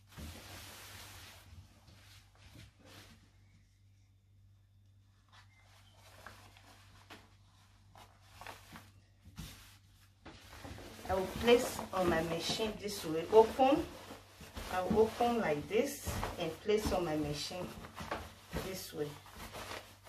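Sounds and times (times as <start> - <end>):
fabric rustling: 0.0 - 4.0, 5.1 - 20.0.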